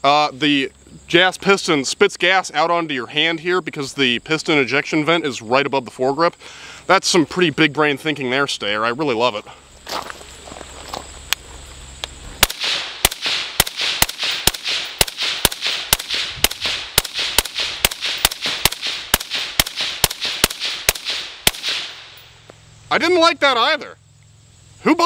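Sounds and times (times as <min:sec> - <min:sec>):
suppressed rifle shots: 0:12.4 - 0:22.2.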